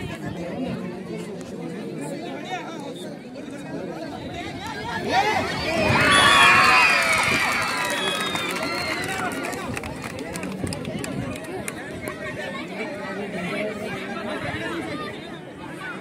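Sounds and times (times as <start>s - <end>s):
hubbub of chatter: 0.0s - 16.0s
crowd cheering and shouting: 4.7s - 9.8s.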